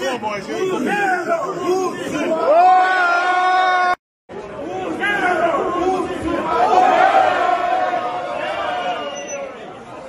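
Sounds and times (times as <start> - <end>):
crowd of men shouting: 0.4 - 4.0, 4.6 - 9.2.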